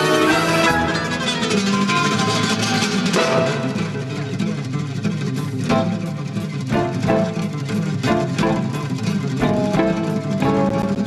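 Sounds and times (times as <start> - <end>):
band with drums: 0.0 - 11.0
fast picked acoustic guitar: 0.0 - 11.0.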